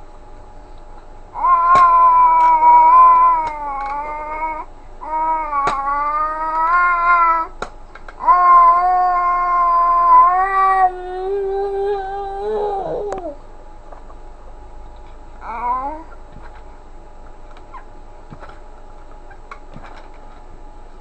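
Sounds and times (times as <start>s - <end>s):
baby making long vocal sounds: 1.4s - 7.6s, 8.2s - 13.4s, 15.4s - 16.1s.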